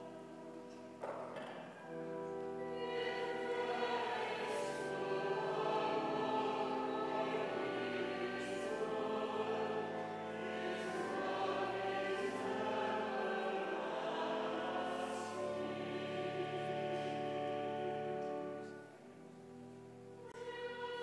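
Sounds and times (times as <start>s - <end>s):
choir singing held chords: 0.0s - 21.0s.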